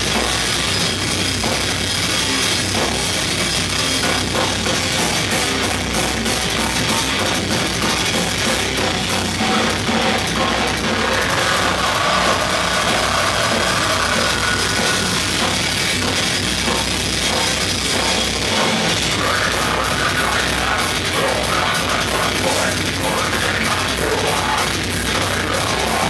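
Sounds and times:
bass guitar: 0.0 - 26.0
dense drumming: 0.0 - 26.0
distorted electric guitars: 0.0 - 26.0.

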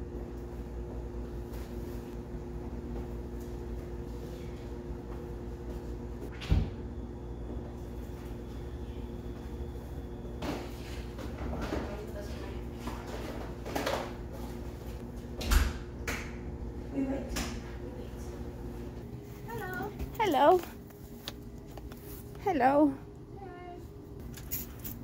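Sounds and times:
steady hum: 0.0 - 25.0.

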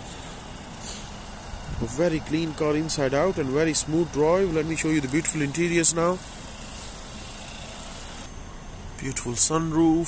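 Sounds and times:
car engine idling: 0.0 - 8.3.

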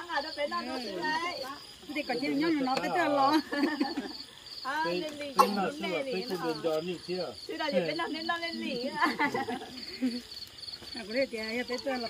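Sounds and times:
people talking: 0.0 - 10.2, 10.9 - 12.0
crickets chirping: 0.0 - 12.0.

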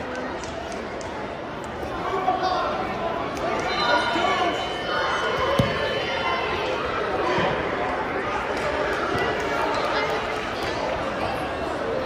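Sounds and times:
spectators and coaches chattering: 0.0 - 12.0.

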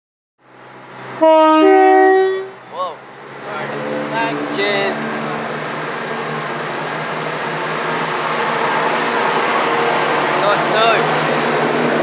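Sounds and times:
train running noise: 0.5 - 12.0
two-tone train horn: 1.2 - 2.6.

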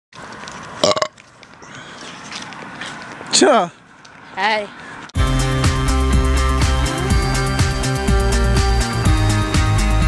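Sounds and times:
loud pitched vocal sound: 6.4 - 8.6.

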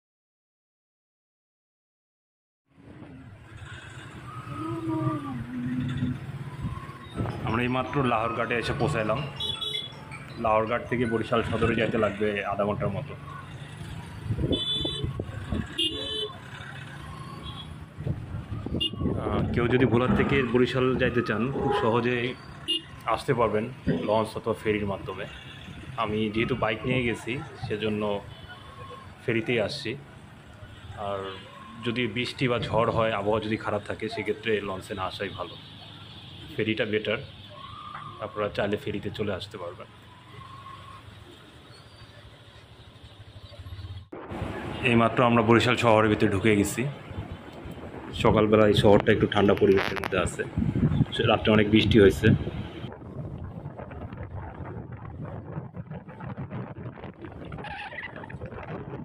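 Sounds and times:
outdoor noise: 2.6 - 59.0
vehicle engines humming: 2.7 - 59.0.

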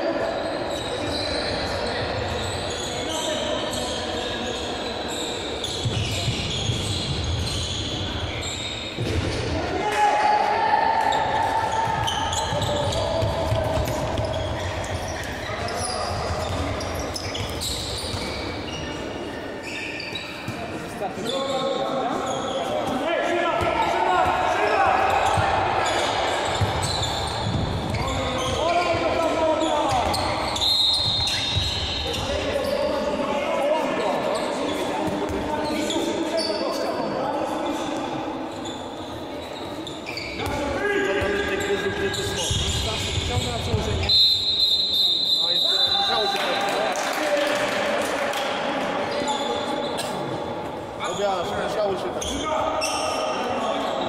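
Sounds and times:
players shouting in echoing hall: 0.0 - 54.0
ball bouncing on court floor: 11.8 - 15.4, 26.5 - 28.6, 29.9 - 30.4.

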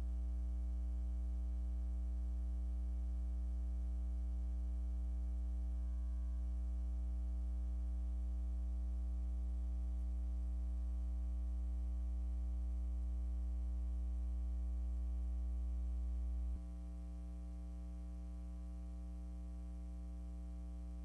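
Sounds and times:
electrical mains hum with buzz: 0.0 - 21.0.

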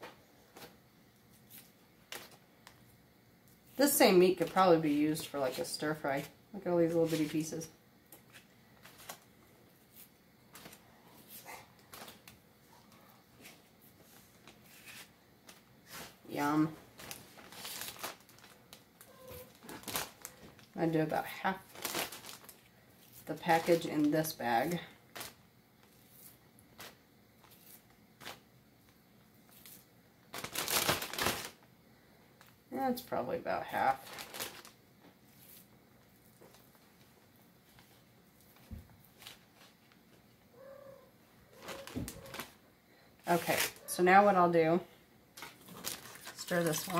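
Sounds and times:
plastic bag rustling: 14.2 - 28.5, 29.5 - 31.6, 33.7 - 39.9, 41.5 - 42.6, 45.4 - 46.9.

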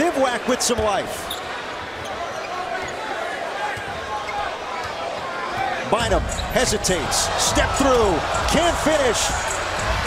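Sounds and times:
arena crowd noise: 0.0 - 10.0
sneaker squeaks: 0.8 - 3.0, 5.6 - 6.8.

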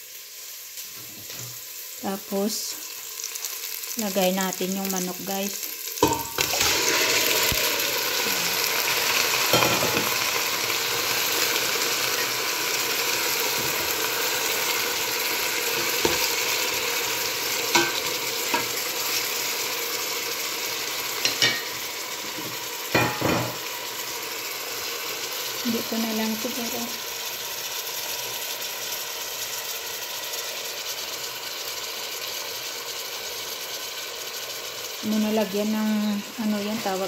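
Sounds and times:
chicken frying sizzle in oil: 0.0 - 37.0.

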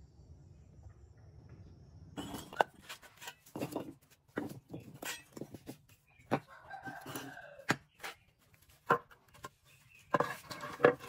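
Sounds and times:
bricks knocking on concrete floor: 2.2 - 8.1.

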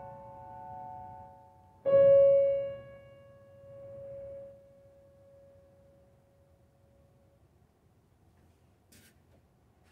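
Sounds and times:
piano note ringing: 0.0 - 7.1.

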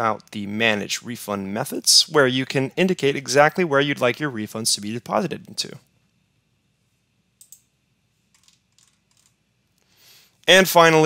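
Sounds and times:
faint computer mouse clicks: 7.4 - 7.7.

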